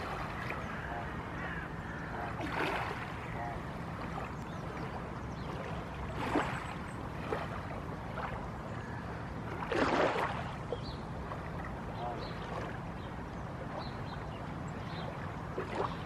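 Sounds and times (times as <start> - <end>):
small waves lapping on shore: 0.0 - 16.0.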